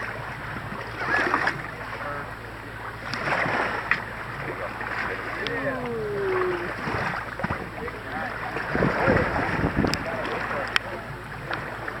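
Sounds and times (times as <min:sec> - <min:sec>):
seawater splashing: 0:00.0 - 0:12.0
wind on microphone: 0:08.6 - 0:10.4.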